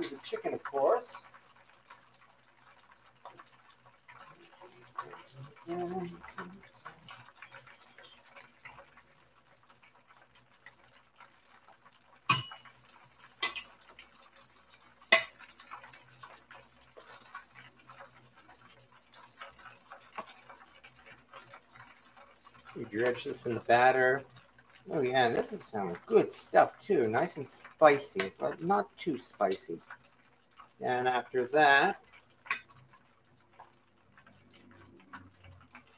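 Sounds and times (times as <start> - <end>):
tongs scraping metal bowl: 13.4 - 13.8, 27.1 - 28.5.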